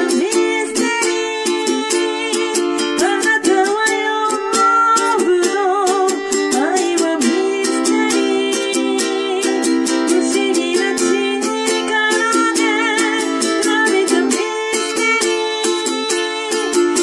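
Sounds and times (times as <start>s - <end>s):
ukulele strumming chords: 0.0s - 17.0s
woman singing: 0.0s - 17.0s.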